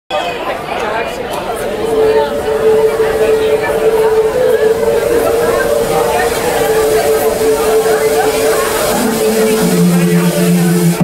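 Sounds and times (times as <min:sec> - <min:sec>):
audience chatter: 0:00.1 - 0:11.0.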